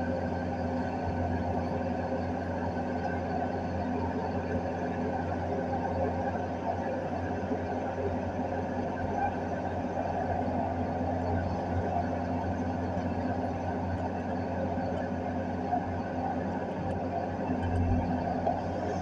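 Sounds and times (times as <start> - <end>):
excavator diesel engine running: 0.0 - 19.0.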